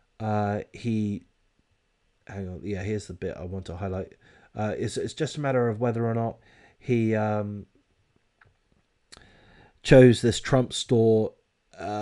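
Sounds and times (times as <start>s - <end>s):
man speaking: 0.2s - 1.2s, 2.3s - 7.7s, 9.8s - 12.0s.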